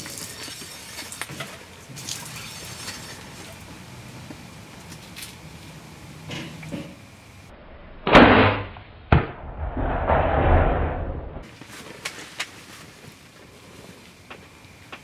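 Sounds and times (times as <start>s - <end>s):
sharp crack: 8.0s - 12.5s.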